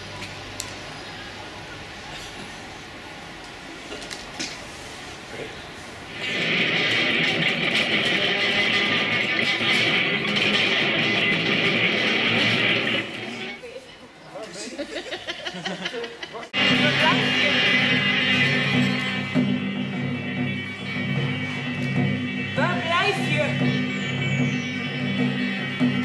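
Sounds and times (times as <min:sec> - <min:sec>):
electric guitar strummed loudly: 0:06.1 - 0:13.6, 0:16.6 - 0:26.0.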